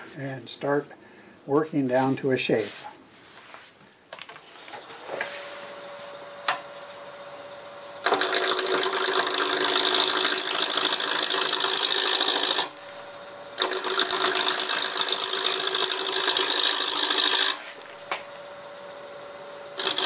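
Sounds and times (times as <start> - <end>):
lathe whine: 4.2 - 20.0
gouge cutting wood on a lathe: 8.0 - 12.7, 13.6 - 17.8, 19.8 - 20.0.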